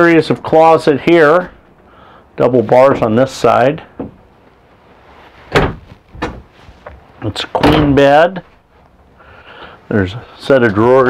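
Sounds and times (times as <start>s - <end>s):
wooden closet doors knocking shut: 4.0s - 4.2s, 5.5s - 6.5s.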